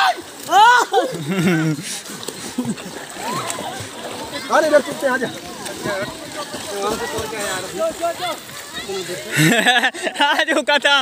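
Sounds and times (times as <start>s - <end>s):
swimmers splashing in water: 0.0s - 11.0s.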